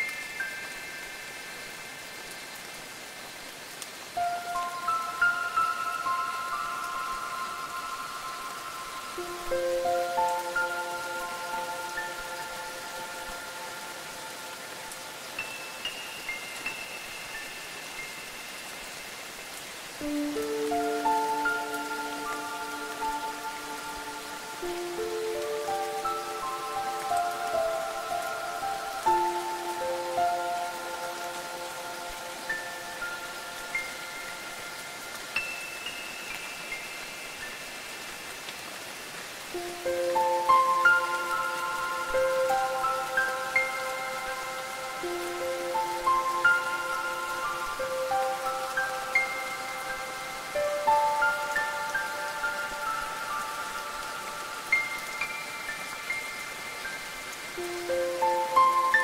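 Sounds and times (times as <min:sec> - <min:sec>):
steady rain falling: 0:00.0 - 0:59.0.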